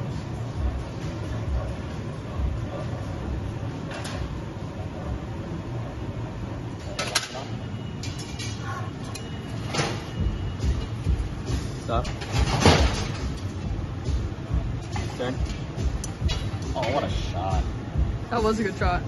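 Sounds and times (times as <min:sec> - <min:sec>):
furnace and burners roaring: 0:00.0 - 0:19.0.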